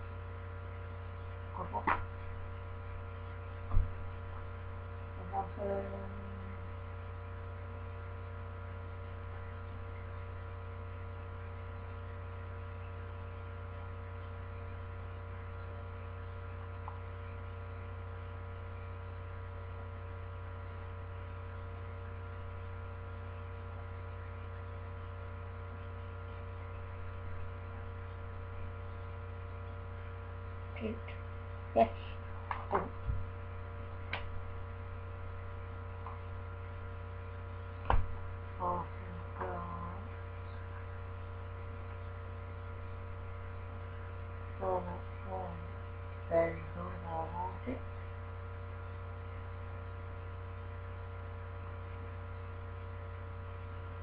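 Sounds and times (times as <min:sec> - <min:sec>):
electrical mains hum: 0:00.0 - 0:54.0.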